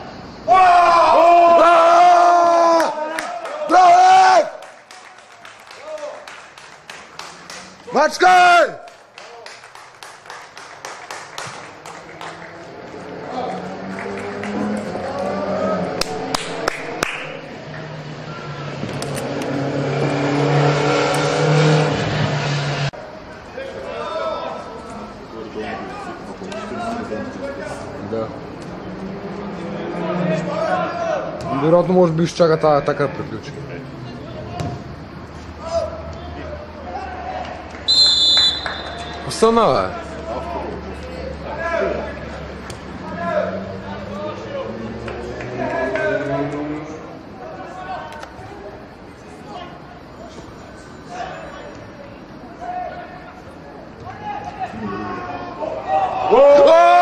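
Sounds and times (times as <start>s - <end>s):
players shouting: 0.0s - 4.9s, 7.0s - 8.9s, 11.2s - 21.8s, 23.2s - 57.0s
people cheering and yelling: 0.0s - 6.3s, 11.3s - 21.4s, 28.8s - 31.9s, 32.9s - 50.1s, 51.0s - 57.0s
people clapping: 2.7s - 18.0s, 37.3s - 39.6s, 44.8s - 46.7s
referee's whistle blast: 37.9s - 39.3s.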